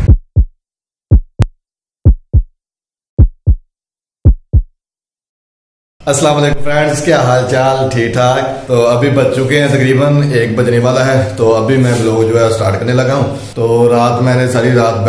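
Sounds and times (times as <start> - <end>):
heartbeat thumps: 0.0 - 2.5, 3.2 - 3.6, 4.2 - 4.7
man speaking: 6.1 - 15.0.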